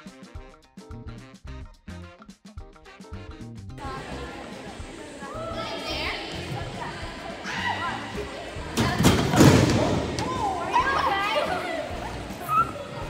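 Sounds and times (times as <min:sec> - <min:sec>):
music with steady beat: 0:00.0 - 0:07.3
girls squealing and shrieking: 0:07.4 - 0:08.2, 0:10.2 - 0:13.0.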